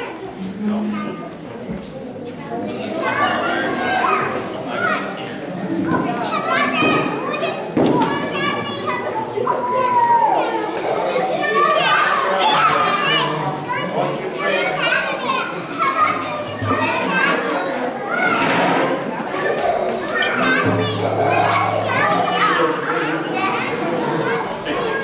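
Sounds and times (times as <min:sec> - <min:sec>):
overlapping chatter: 0:00.0 - 0:25.0
children calling out: 0:02.6 - 0:25.0.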